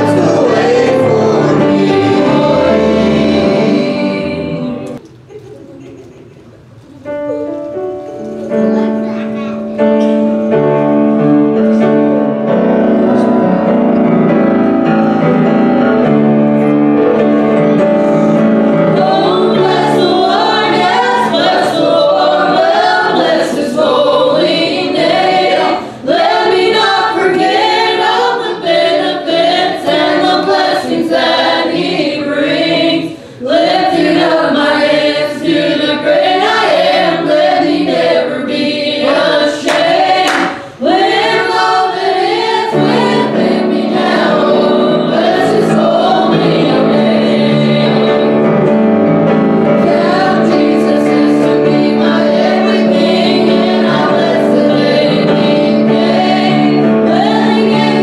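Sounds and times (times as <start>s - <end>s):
choir singing gospel song: 0.0s - 5.0s, 11.1s - 58.0s
piano accompaniment: 0.0s - 5.0s, 6.6s - 58.0s.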